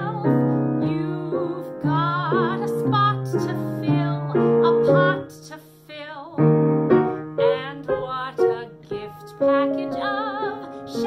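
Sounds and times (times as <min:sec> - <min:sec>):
person singing with vibrato: 0:00.0 - 0:06.5, 0:07.1 - 0:11.0
grand piano chords: 0:00.0 - 0:11.0.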